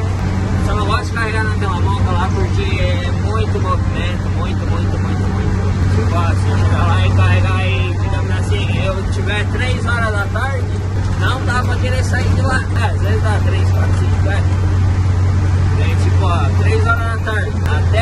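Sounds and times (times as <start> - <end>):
truck engine drone: 0.0 - 18.0
man talking: 0.6 - 14.5, 15.7 - 18.0.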